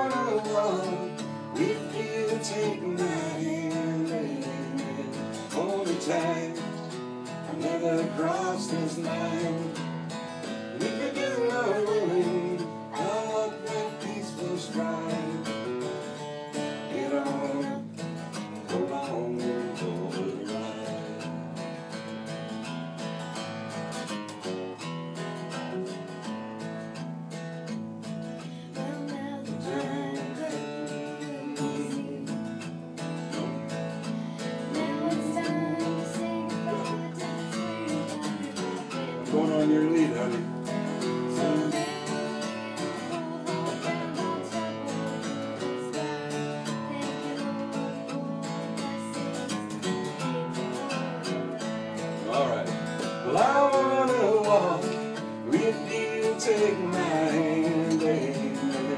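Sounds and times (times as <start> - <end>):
person singing: 0.0 - 21.6, 28.4 - 58.9
acoustic guitar country song: 0.0 - 58.9.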